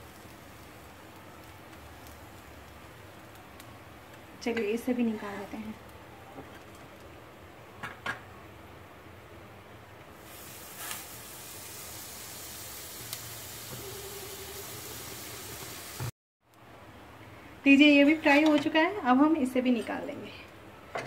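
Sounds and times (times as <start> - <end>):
bread sizzling on hot pan: 0.0 - 5.5, 10.2 - 16.1.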